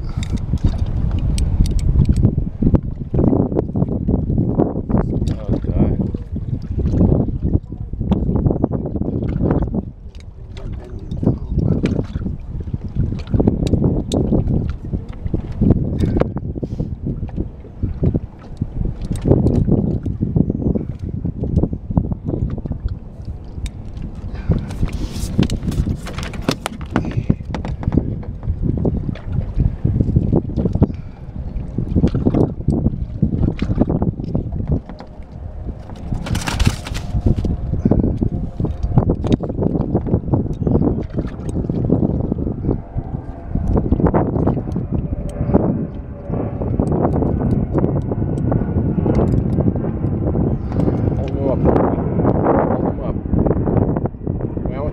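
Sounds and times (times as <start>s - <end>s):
water noise: 0.0s - 54.9s
wind buffeting microphone: 0.0s - 54.9s.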